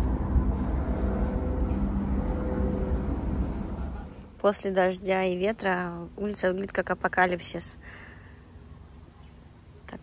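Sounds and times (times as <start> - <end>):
motor vehicle rumble: 0.0 - 4.8
faint engine hum: 0.0 - 10.0.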